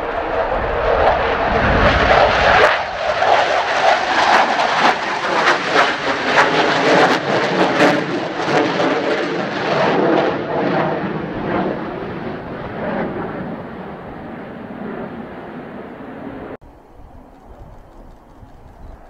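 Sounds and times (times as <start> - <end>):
wind buffeting microphone: 0.0 - 5.9, 11.2 - 19.0
jet engines passing overhead: 0.0 - 19.0.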